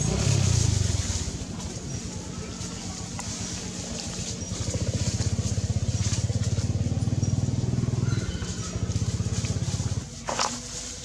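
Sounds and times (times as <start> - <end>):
engine running: 0.0 - 11.0.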